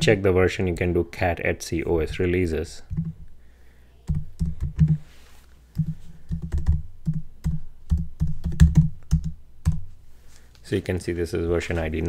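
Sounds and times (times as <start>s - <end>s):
keyboard typing: 4.1s - 5.0s, 5.8s - 9.8s.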